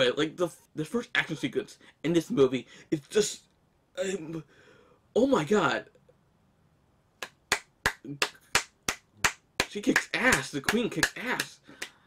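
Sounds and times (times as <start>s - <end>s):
hands clapping: 7.2s - 12.0s.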